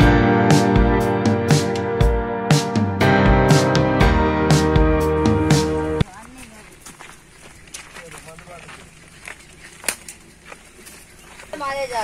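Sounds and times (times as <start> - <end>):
footsteps on dry ground: 5.9 - 12.0.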